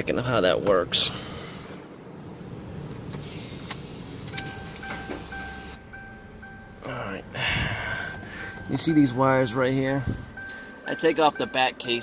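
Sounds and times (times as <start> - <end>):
car warning chime beeping: 4.2 - 12.0.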